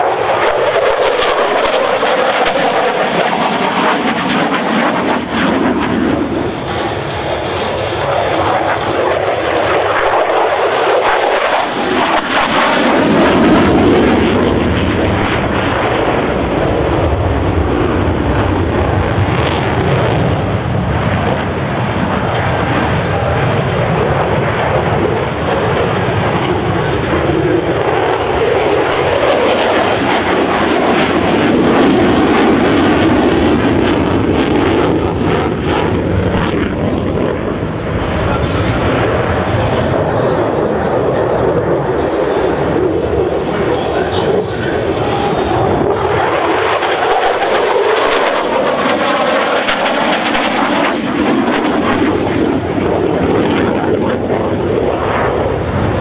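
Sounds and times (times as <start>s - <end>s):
jet engine roar: 0.0s - 56.0s.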